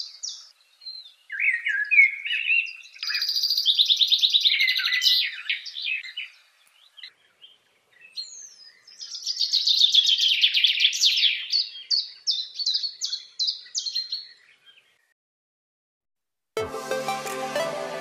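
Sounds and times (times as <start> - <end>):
songbird singing: 0.0 - 15.2.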